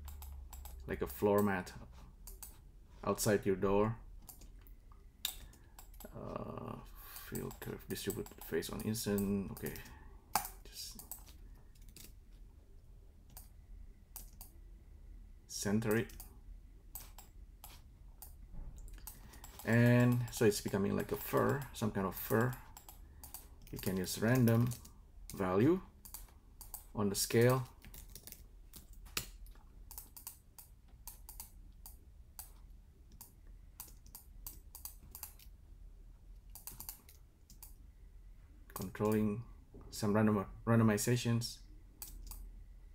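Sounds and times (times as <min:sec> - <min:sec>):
keyboard typing: 0:00.0 - 0:01.6, 0:07.1 - 0:12.2, 0:14.1 - 0:14.5, 0:16.9 - 0:25.4, 0:26.0 - 0:35.5, 0:36.5 - 0:37.8
low steady hum: 0:00.0 - 0:42.9.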